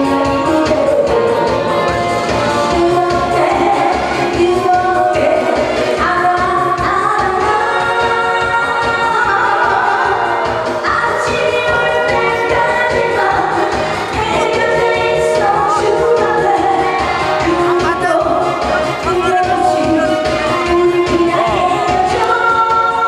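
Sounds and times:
pop backing track with beat: 0.0s - 23.0s
woman singing into microphone: 0.0s - 23.0s.

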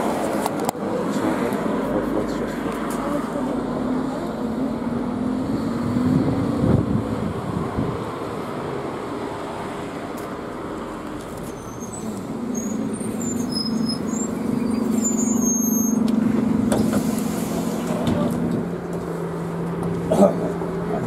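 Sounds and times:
bus engine hum: 0.0s - 21.0s
brake squeals: 11.2s - 18.5s.

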